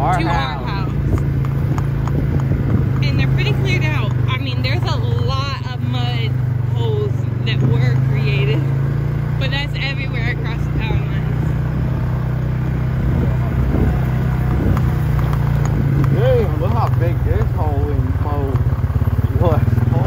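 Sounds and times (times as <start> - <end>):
people talking: 0.0 - 1.1, 3.0 - 8.7, 9.4 - 11.4, 16.0 - 18.6, 19.2 - 20.0
off-road vehicle engine running: 0.0 - 20.0.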